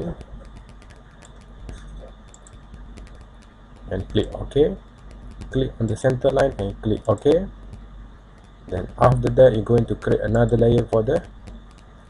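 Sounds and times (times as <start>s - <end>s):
low steady hum: 0.0s - 12.0s
mouse and keyboard clicking: 9.7s - 12.0s.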